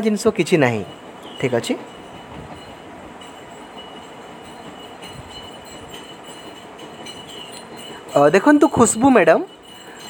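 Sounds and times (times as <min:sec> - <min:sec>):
faint high whine: 0:00.0 - 0:10.0
steady background noise: 0:00.0 - 0:10.0.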